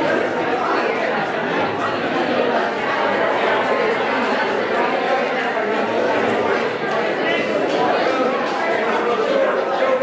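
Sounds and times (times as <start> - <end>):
overlapping chatter: 0.0 - 10.0.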